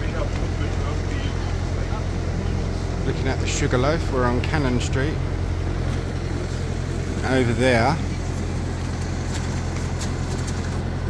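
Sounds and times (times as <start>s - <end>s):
traffic engine rumble: 0.0s - 11.0s.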